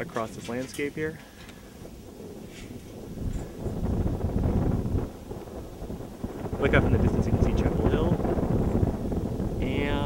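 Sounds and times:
wind gusting on microphone: 0.0 - 10.0.

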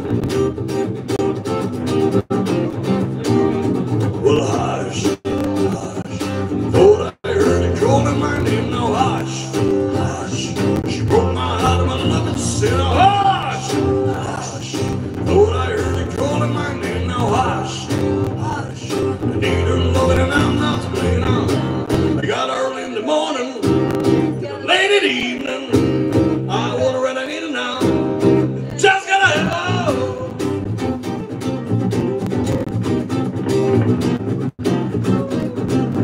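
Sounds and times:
acoustic guitar: 0.0 - 36.0
man singing: 4.1 - 30.6.

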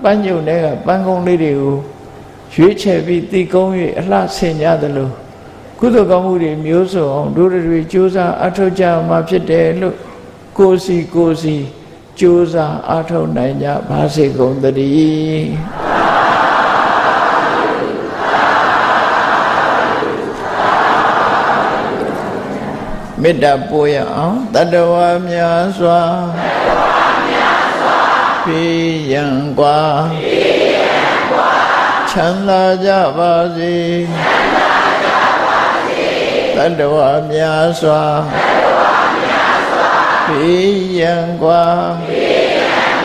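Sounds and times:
monk chanting: 0.0 - 15.9, 20.1 - 27.4, 28.4 - 30.6, 32.0 - 34.6, 36.5 - 39.2, 40.2 - 42.6
congregation calling out in unison: 13.8 - 43.0.

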